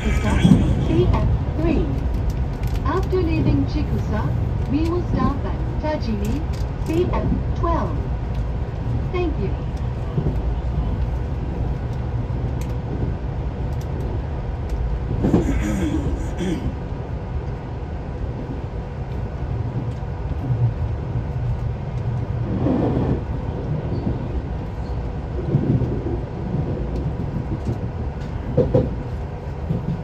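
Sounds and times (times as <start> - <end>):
train low rumble: 0.0 - 30.0.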